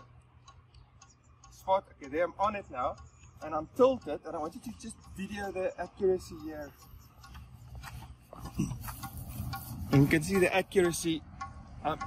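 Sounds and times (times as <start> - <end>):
short low grunt: 8.4 - 9.0.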